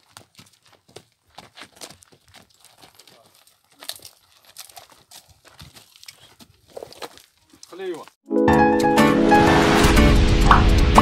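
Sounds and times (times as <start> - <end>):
horse hooves on dry dirt: 0.0 - 8.2
man's footsteps crunching on dirt: 0.0 - 8.2.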